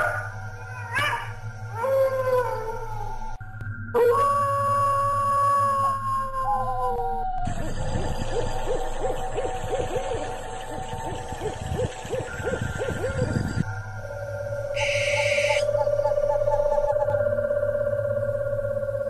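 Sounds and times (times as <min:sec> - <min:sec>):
owl hooting: 0:00.0 - 0:03.3, 0:04.0 - 0:17.3
held eerie tone: 0:00.0 - 0:19.0.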